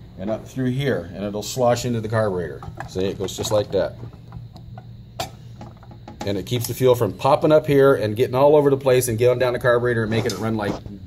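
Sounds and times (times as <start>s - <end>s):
low steady hum: 0.0s - 11.0s
faint clicks of metal parts: 2.5s - 6.8s.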